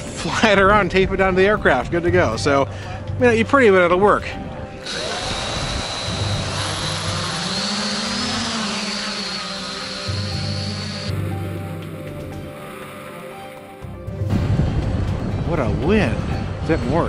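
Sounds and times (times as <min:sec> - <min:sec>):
background music: 0:00.0 - 0:17.0
drone propellers whining: 0:04.8 - 0:14.0.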